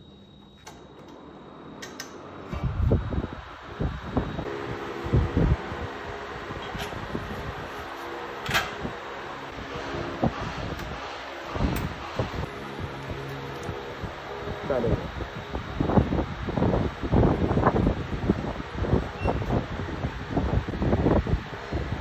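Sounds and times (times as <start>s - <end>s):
steady hum: 0.0s - 22.0s.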